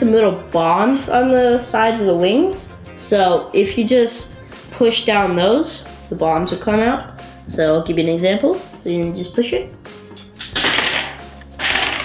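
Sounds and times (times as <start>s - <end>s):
background music: 0.0s - 12.0s
plastic pieces clattering on table: 10.4s - 12.0s.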